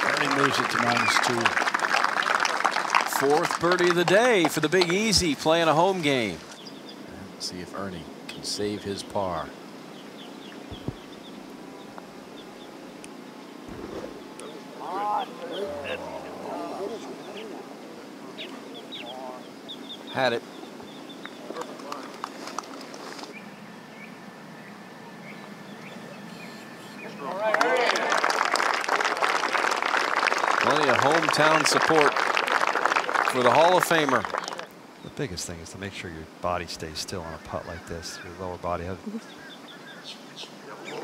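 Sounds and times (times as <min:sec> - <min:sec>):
crowd applauding: 0:00.0 - 0:05.8, 0:27.2 - 0:34.7
small birds chirping: 0:04.6 - 0:22.4, 0:23.2 - 0:27.2, 0:34.8 - 0:41.0.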